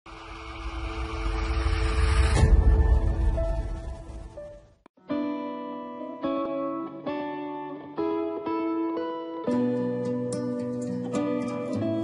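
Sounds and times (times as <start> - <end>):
cinematic hit: 0.1 - 4.8
low rumble: 0.1 - 4.9.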